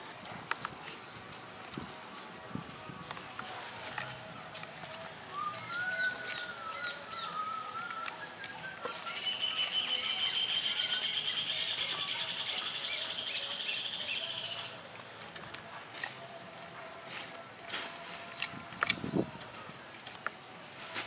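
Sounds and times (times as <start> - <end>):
bird wavering whistle: 5.4 - 14.6.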